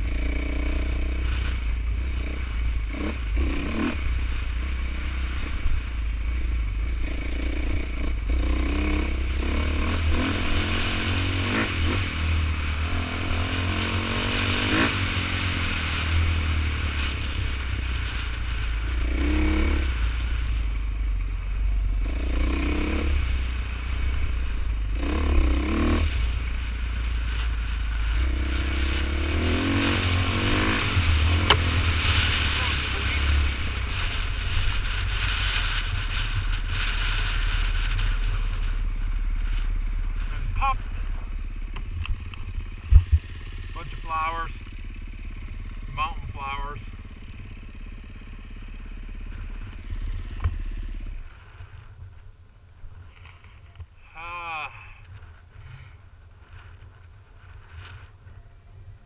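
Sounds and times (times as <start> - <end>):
dirt bike engine revving: 0.0 - 20.6, 21.7 - 51.9.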